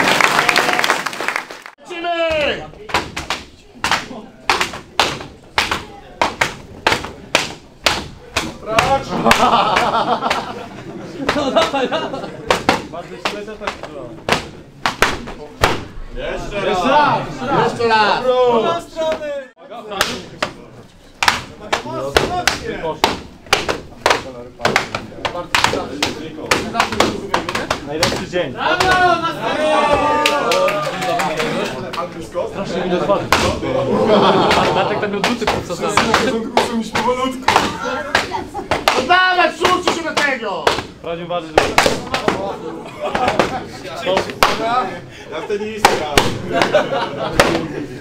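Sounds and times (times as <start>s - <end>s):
voices: 1.8s - 48.0s
men shouting: 28.6s - 31.6s.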